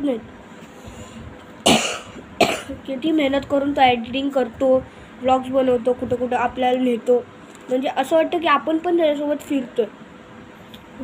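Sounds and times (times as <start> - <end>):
boy coughing: 1.6 - 2.9.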